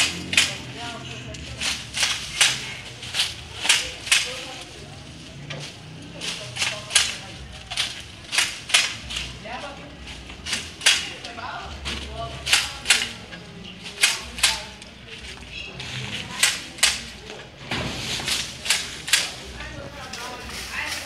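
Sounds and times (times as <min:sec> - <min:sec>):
pole shears snapping branches: 0:00.0 - 0:21.0.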